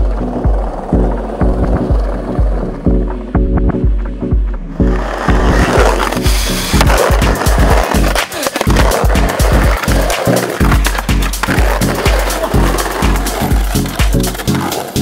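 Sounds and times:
music with heavy bass beat: 0.0 - 15.0
skateboard wheels on brick: 4.8 - 15.0.

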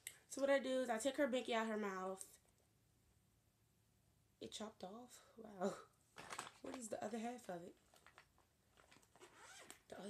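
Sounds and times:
plastic items clicking: 6.2 - 6.9, 7.9 - 9.2.

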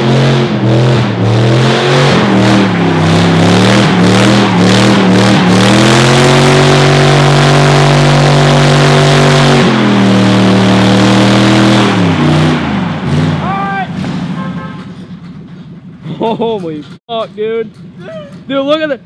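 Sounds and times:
engine revving high: 0.0 - 14.4
tires spinning on pavement: 0.0 - 14.4.

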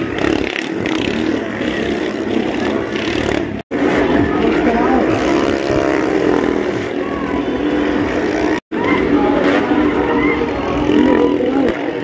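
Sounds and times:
motorcycle and car engines droning: 0.0 - 12.0.

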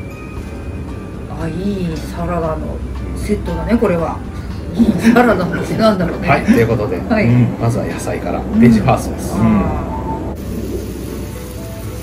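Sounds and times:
background music: 0.0 - 12.0
steak sizzling on hot stone: 10.4 - 12.0.

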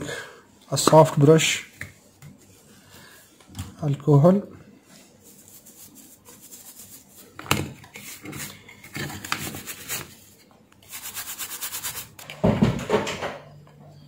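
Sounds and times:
brush scrubbing circuit board: 5.2 - 7.3, 9.4 - 10.1, 10.9 - 12.2.

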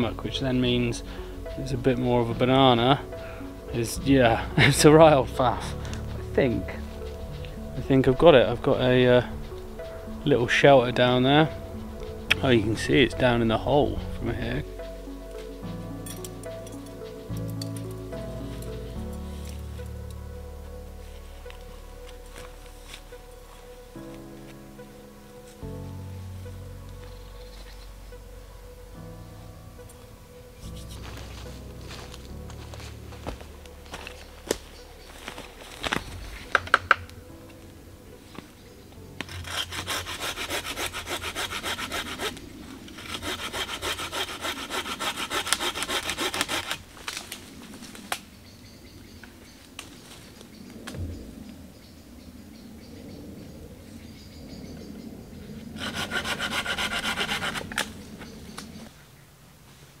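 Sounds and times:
hand saw cutting branch: 39.2 - 47.2, 55.8 - 58.0.

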